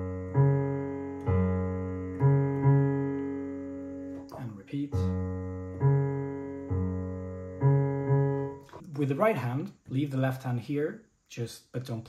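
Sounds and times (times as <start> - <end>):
digital piano playing low notes: 0.0 - 9.3.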